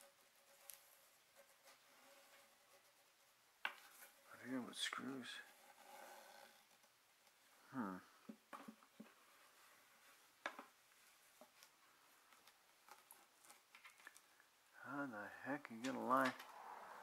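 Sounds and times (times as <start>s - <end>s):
faint clicks of parts handled: 10.4s - 14.5s.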